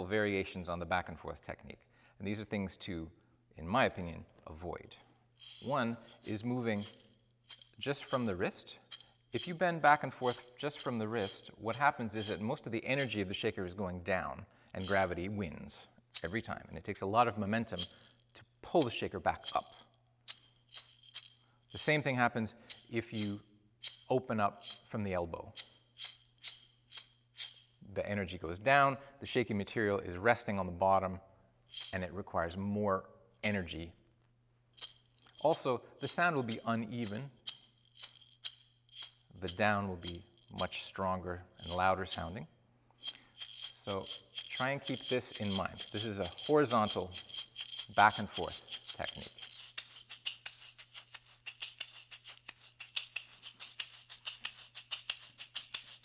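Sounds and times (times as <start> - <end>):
bead shaker shaken: 5.2 - 13.8, 14.8 - 15.4, 16.1 - 27.8, 31.7 - 32.2, 33.4 - 33.8, 34.7 - 42.4, 43.0 - 56.0.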